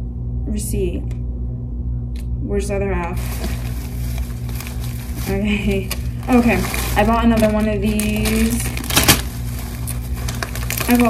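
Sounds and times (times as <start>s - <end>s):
steady low hum: 0.0s - 11.0s
plastic bag rustling: 3.1s - 11.0s.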